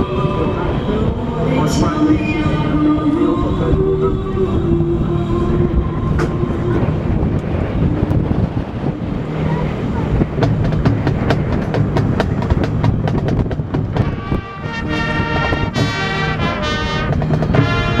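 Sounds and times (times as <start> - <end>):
heavy low rumble: 0.0 - 18.0
brass chords: 13.7 - 18.0.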